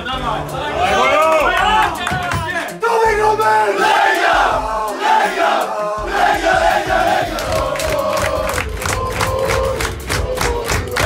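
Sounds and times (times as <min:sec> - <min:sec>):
group clapping in unison: 0:01.0 - 0:02.7, 0:06.2 - 0:11.0.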